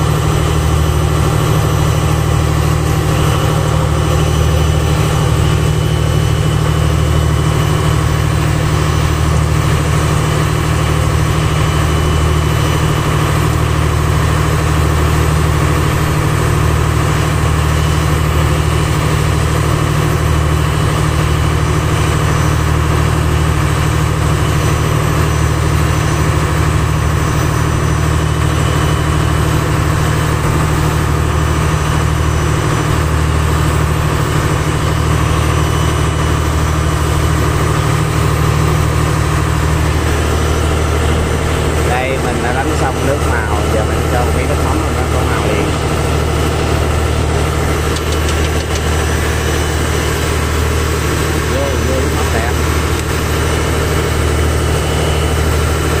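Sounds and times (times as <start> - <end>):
boat engine running: 0.0 - 56.0.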